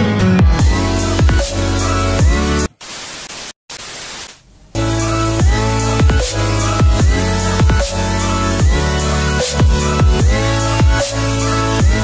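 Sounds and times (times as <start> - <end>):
music: 0.0 - 2.7, 4.8 - 12.0
television static hiss: 2.7 - 4.8.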